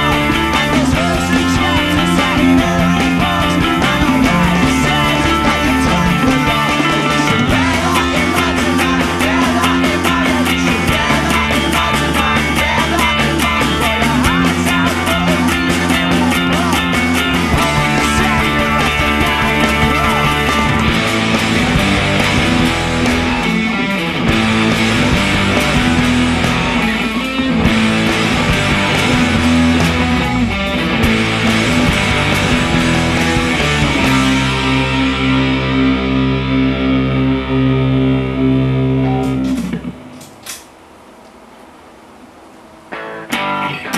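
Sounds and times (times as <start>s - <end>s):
drums: 0.0s - 43.9s
electric guitars: 0.0s - 43.9s.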